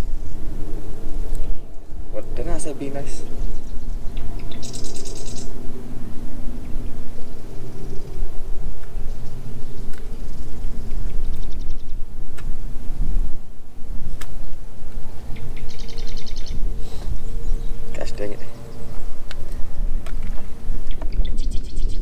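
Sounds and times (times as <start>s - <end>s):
low hum and rumble: 0.0s - 22.0s
marsh bird trilling: 2.8s - 5.6s, 15.3s - 16.6s.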